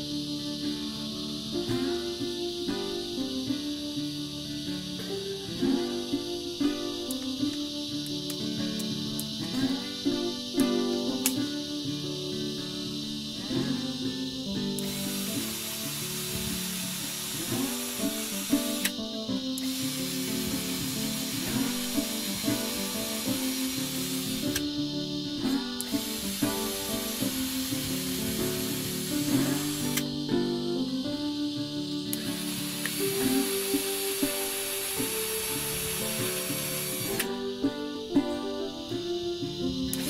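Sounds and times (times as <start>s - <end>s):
background music: 0.0s - 40.0s
cordless drill whirring: 14.8s - 19.0s, 19.6s - 21.4s, 25.8s - 27.4s, 28.1s - 30.0s, 32.4s - 37.3s.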